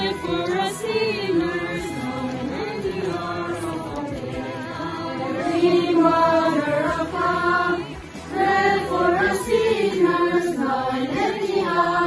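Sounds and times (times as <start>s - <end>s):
crowd chanting a prayer: 0.0s - 12.0s.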